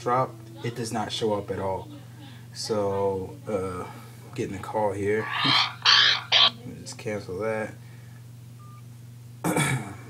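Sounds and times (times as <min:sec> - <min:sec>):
steady low hum: 0:00.0 - 0:10.0
man clearing throat: 0:09.4 - 0:10.0.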